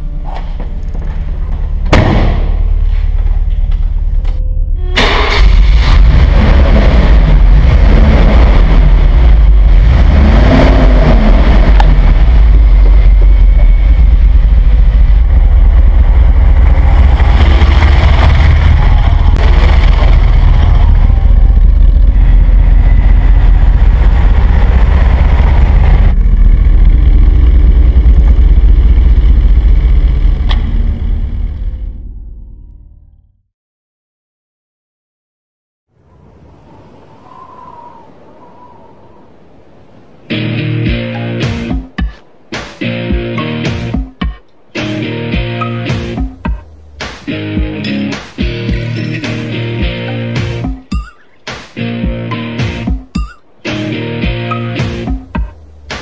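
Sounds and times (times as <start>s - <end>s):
car engine revving: 5.0s - 32.6s.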